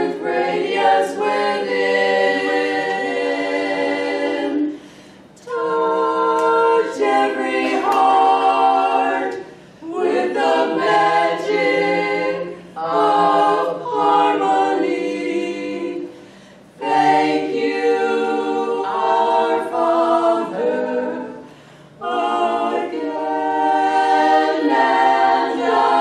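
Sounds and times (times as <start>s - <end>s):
women singing a cappella in harmony: 0.0s - 26.0s.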